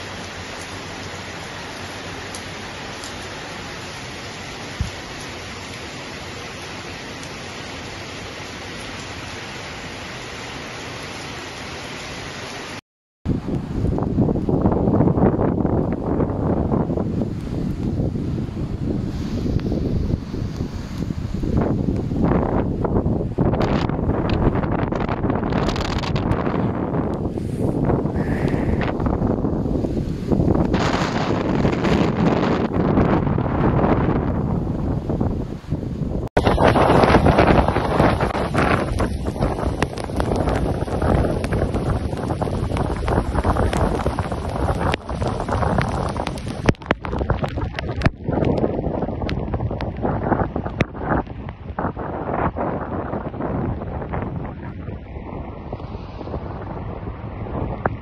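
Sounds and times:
heavy rain falling: 0.0s - 58.0s
wind buffeting microphone: 13.3s - 58.0s.

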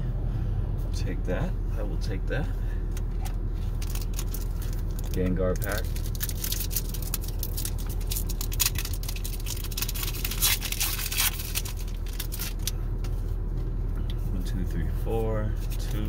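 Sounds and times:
foil wrapper crinkling and tearing: 3.7s - 12.8s.

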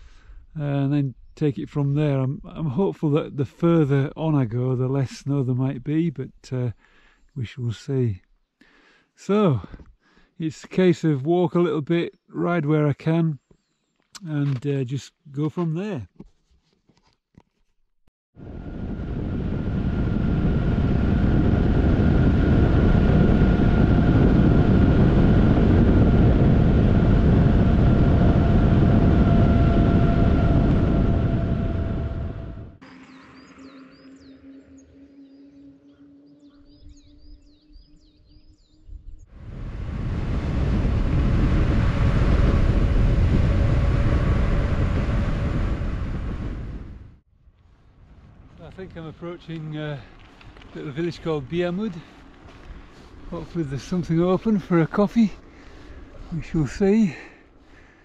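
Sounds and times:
wind rushing over microphone: 18.4s - 32.8s, 36.6s - 58.0s
bicycle tyre hum: 18.4s - 58.0s.

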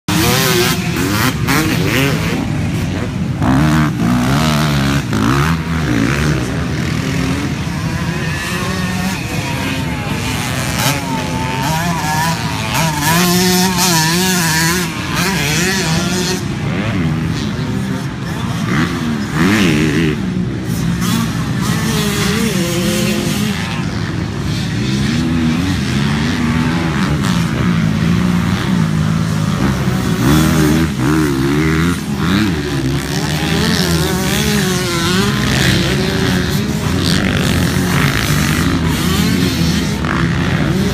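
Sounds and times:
dirt bike engines revving: 0.0s - 40.9s.

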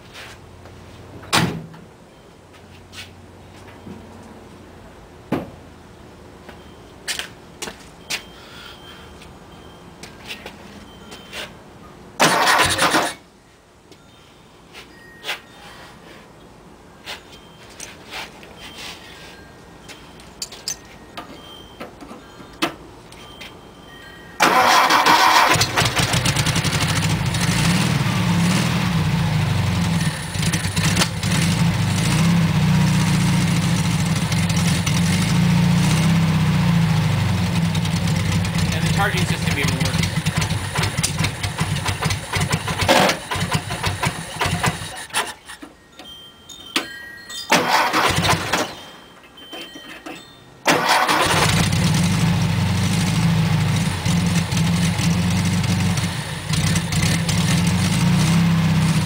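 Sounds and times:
car engine starting and idling: 12.2s - 13.2s, 24.4s - 45.5s, 47.5s - 48.8s, 50.7s - 59.0s.

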